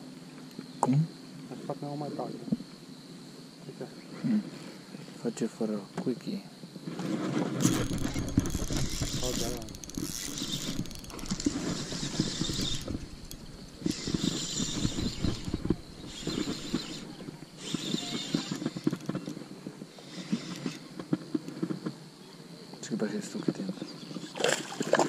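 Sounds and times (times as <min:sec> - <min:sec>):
fishing reel ticking whir: 0:07.6 - 0:21.6.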